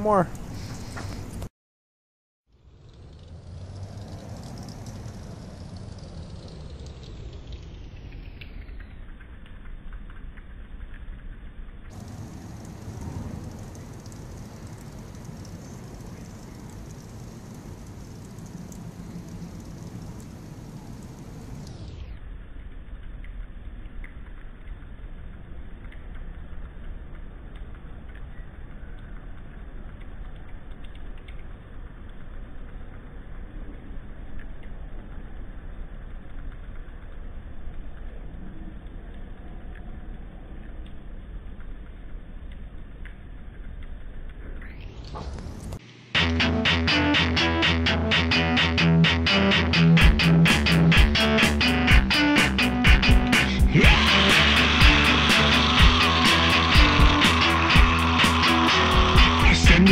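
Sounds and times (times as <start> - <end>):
low outdoor rumble: 2.5 - 59.9
faint ticks: 2.6 - 45.8.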